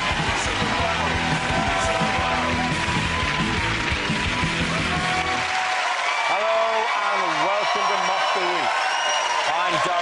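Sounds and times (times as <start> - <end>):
theme music: 0.0 - 6.5
audience applauding: 0.0 - 10.0.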